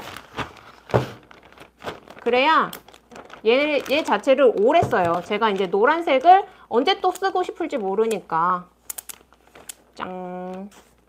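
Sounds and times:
plastic zipper bag rustling: 0.0 - 6.4.

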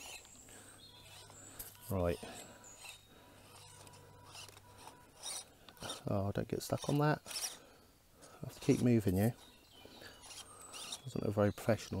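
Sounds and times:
background hiss: 0.0 - 11.5
faint steady hum: 0.0 - 11.8.

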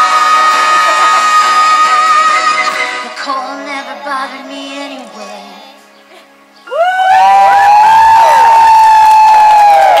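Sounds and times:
crowd cheering and whooping: 0.0 - 2.7, 6.7 - 10.0.

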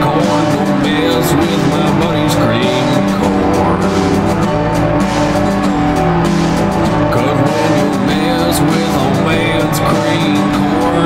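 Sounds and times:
busy rhythmic texture: 0.0 - 11.0
swooping pitch glides: 1.4 - 8.0.

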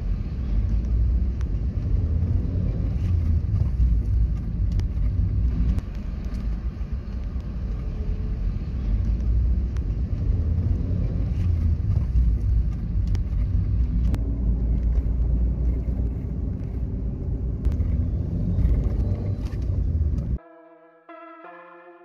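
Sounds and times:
car engine and tyre rumble: 0.0 - 20.4.

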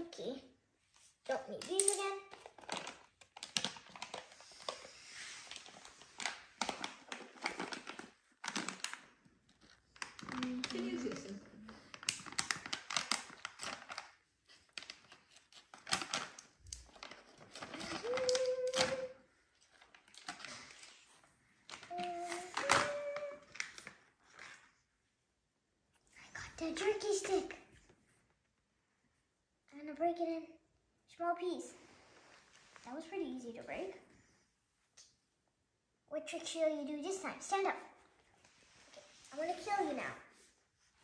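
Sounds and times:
plastic pouch crinkling: 1.8 - 24.7.

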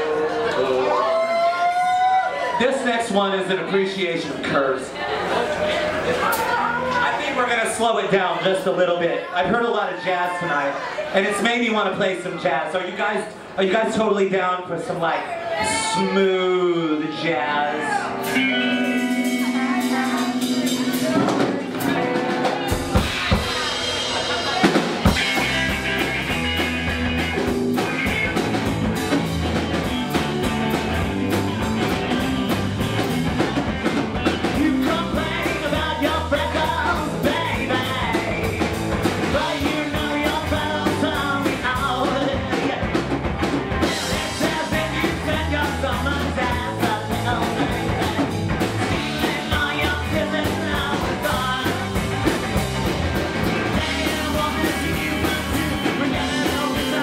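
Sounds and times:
rock band playing: 0.0 - 12.2, 15.4 - 57.0
person singing with band: 17.1 - 25.7, 30.8 - 43.1, 43.8 - 57.0.

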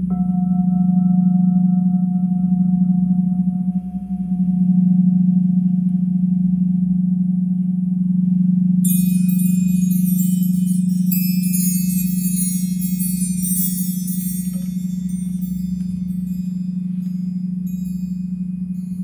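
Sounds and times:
singing bowl low tone: 0.0 - 19.0
chimes ringing: 8.9 - 19.0.

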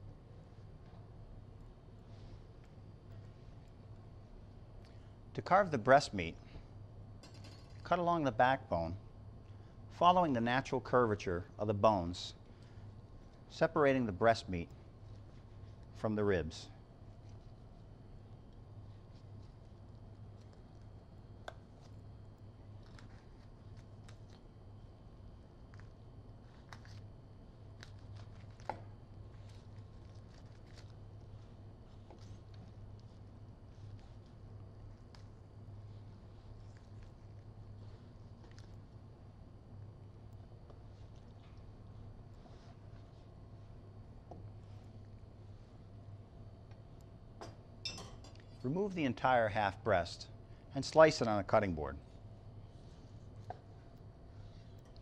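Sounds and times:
steady low hum: 0.0 - 55.0
knife cutting meat crackles: 17.1 - 39.8.

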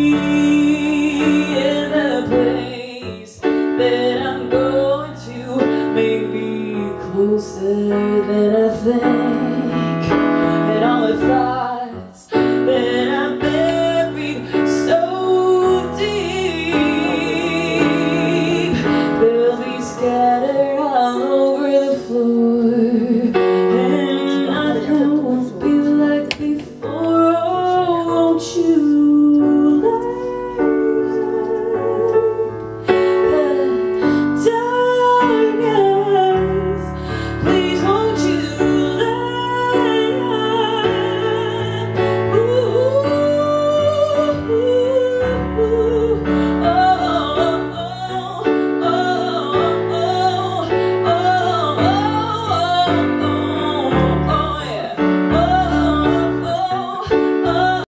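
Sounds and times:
keyboard piano chords: 0.0 - 57.9
woman singing: 0.0 - 57.9.

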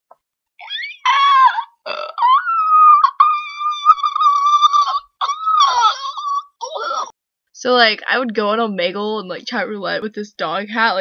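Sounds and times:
high-pitched voice squealing: 0.6 - 7.1.

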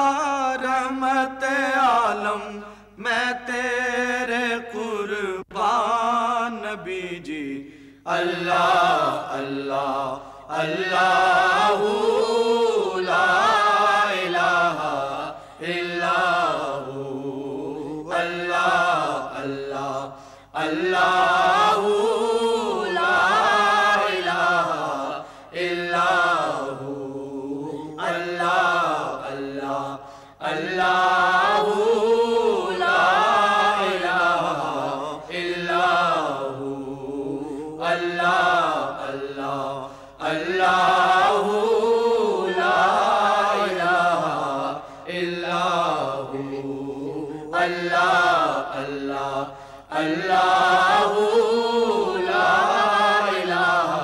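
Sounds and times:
men singing devotional song: 0.0 - 54.0.

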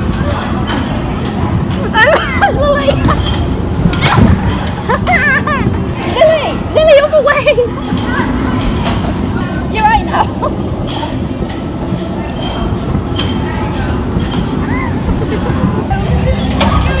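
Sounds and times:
bumper cars rumbling over metal floor: 0.0 - 17.0.

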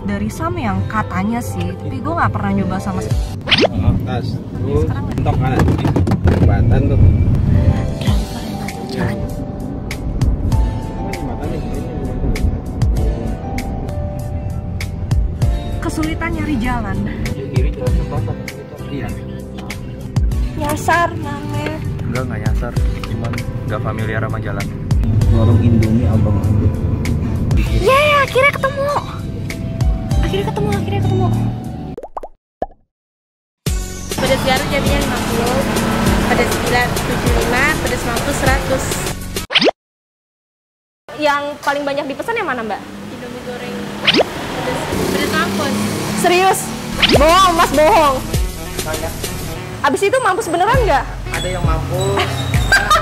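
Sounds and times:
car road rumble: 0.0 - 31.7, 34.1 - 39.2, 42.0 - 53.0
cartoon plop bloops: 3.4 - 3.7, 32.0 - 32.8, 39.5 - 39.7, 44.0 - 44.3, 47.0 - 47.3.

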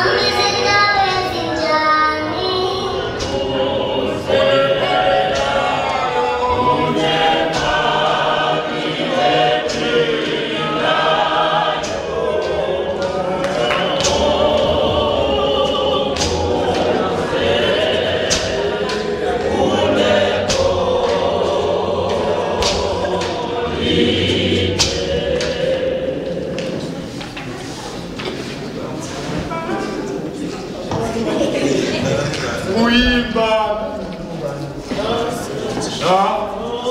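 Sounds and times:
congregation singing a hymn: 0.0 - 36.9.

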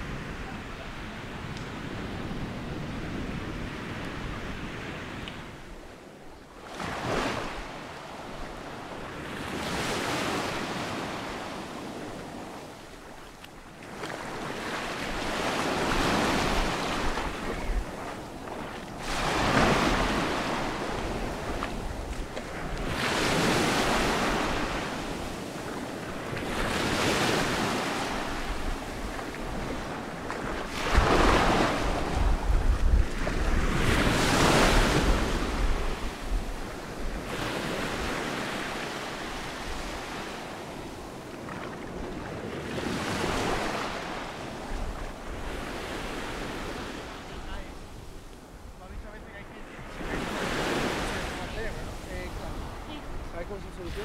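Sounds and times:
wind rumble on microphone: 0.0 - 6.4, 14.4 - 54.0.

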